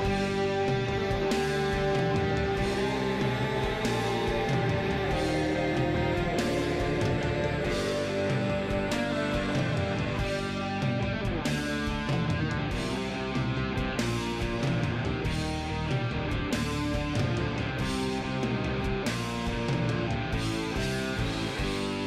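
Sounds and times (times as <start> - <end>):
guitar music with beat: 0.0 - 22.0.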